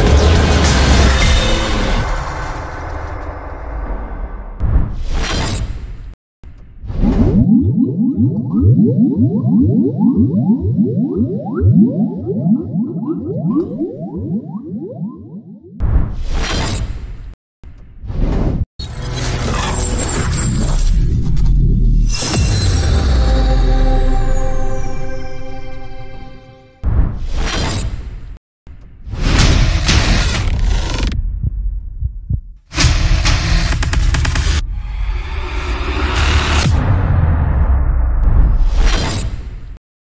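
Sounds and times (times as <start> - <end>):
rising tone sweeps: 7.1 - 15.8
deep heartbeat thumps: 31.2 - 32.6.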